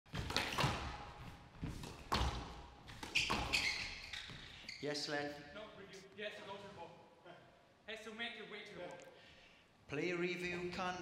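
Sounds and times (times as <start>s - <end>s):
squash ball hits: 0.1s - 3.6s
shoe squeak: 2.9s - 5.2s.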